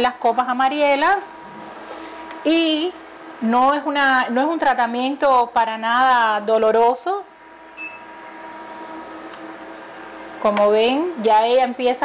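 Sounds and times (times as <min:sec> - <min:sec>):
suction machine hum: 0:00.0 - 0:12.0
vacuum suction hiss: 0:00.7 - 0:04.0, 0:07.3 - 0:11.0.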